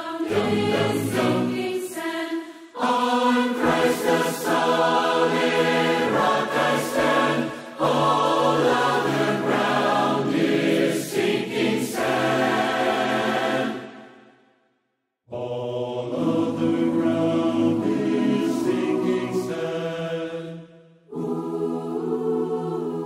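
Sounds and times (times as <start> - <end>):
choir singing unaccompanied: 0.0 - 14.3, 15.3 - 23.0.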